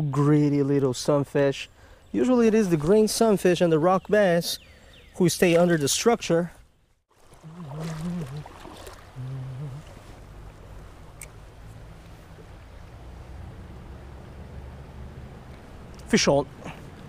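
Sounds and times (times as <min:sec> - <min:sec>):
creek water rushing: 0:07.1 - 0:17.0
faint low voice: 0:09.2 - 0:09.9.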